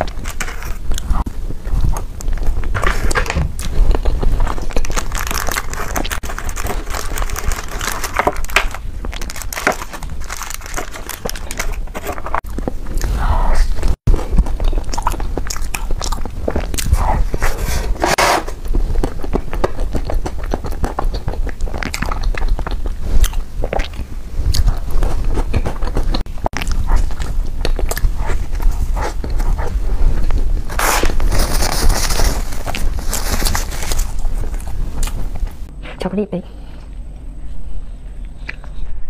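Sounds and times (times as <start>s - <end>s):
biting and chewing cake: 0.0s - 13.2s, 13.8s - 35.7s.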